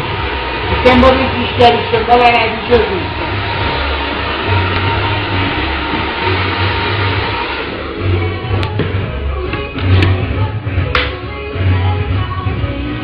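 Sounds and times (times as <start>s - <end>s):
steady rushing noise: 0.0s - 9.1s
music with pulsing bass beat: 0.0s - 13.0s.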